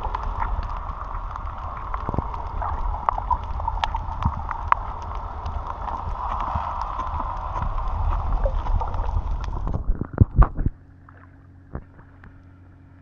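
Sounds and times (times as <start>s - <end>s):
sharp underwater clicks and crackles: 0.0s - 13.0s
underwater rumble and hiss: 0.0s - 13.0s.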